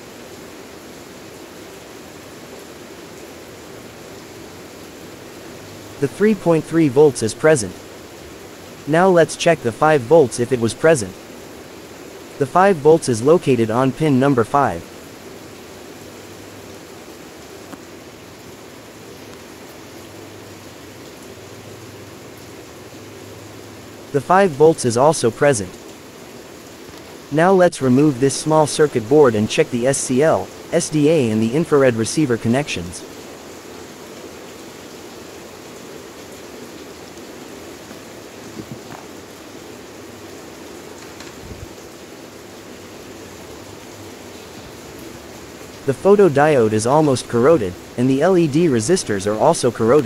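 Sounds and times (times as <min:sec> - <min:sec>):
steady hiss: 0:00.0 - 0:50.0.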